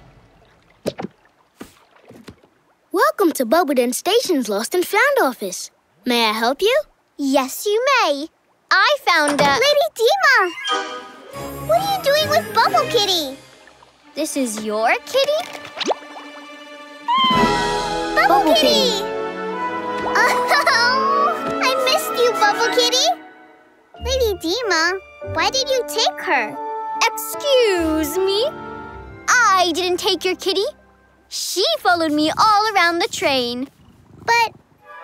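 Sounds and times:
soft background music: 10.5 - 32.6
cartoon kitten meowing: 17.1 - 17.6.

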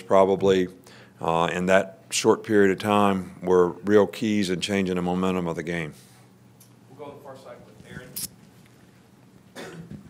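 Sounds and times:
person coughing: 9.6 - 10.0.

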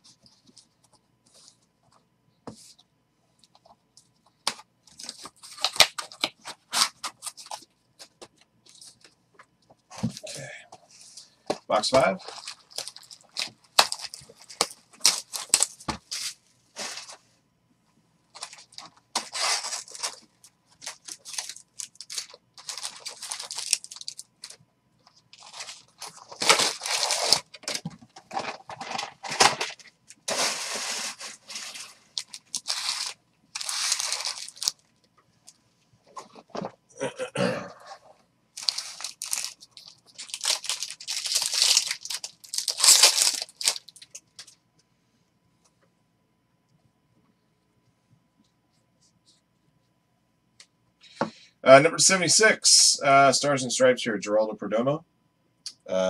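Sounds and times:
foil wrappers tearing and crinkling: 5.0 - 7.6, 11.8 - 17.1, 18.4 - 24.6, 25.3 - 34.9, 38.6 - 44.5.

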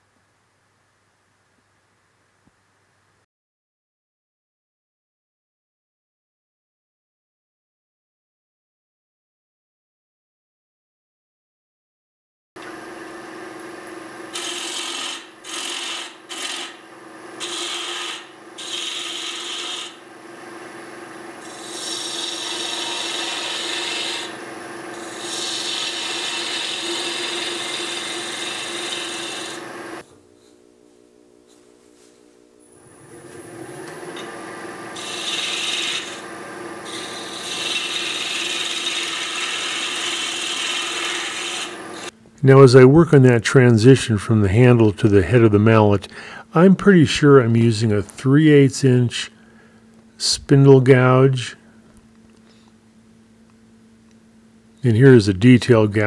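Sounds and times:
lathe humming: 12.6 - 30.0, 32.7 - 42.1
gouge scraping wood on lathe: 14.4 - 16.8, 17.4 - 20.0, 21.4 - 30.0, 34.1 - 42.1.

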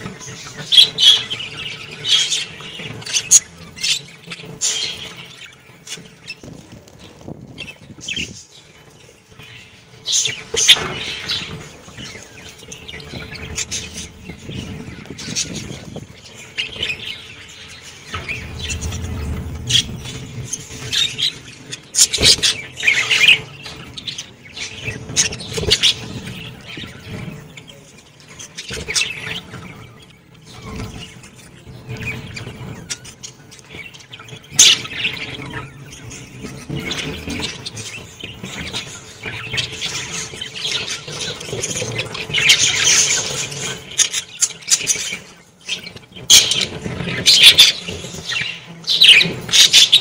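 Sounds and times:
budgerigars chattering and chirping: 0.0 - 50.0.

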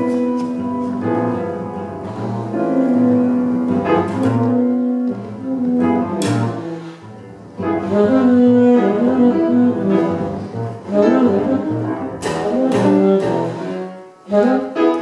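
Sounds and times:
double bass notes: 0.0 - 15.0
saxophone bending long notes: 0.0 - 15.0.

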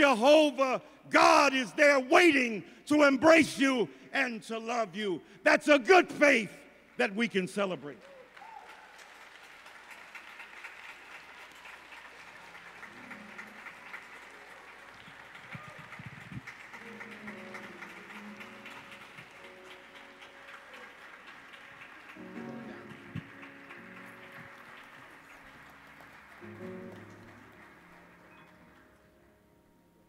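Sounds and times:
congregation applauding: 0.0 - 29.5.

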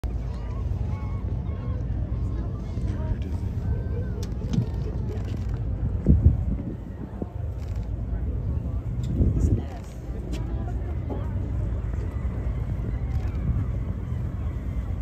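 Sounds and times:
boat rumbling at sea: 0.0 - 15.0.

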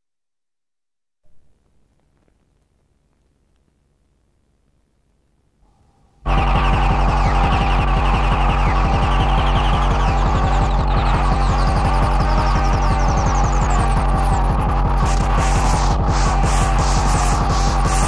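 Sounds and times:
electronic dance music beat: 6.3 - 18.0.

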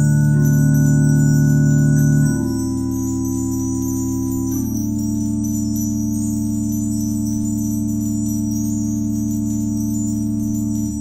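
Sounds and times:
church organ chord: 0.0 - 4.2.

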